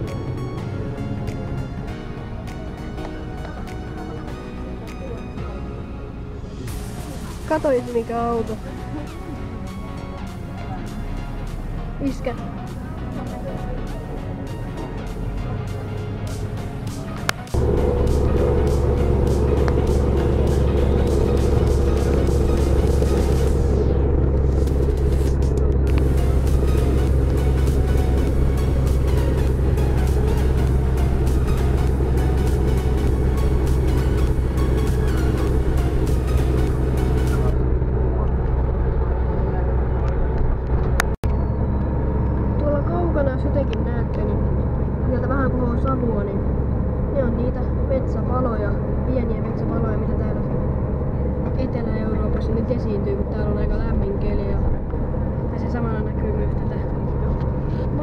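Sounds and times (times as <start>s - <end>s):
music with singing: 0.0s - 37.6s
vehicle driving on road: 0.0s - 58.0s.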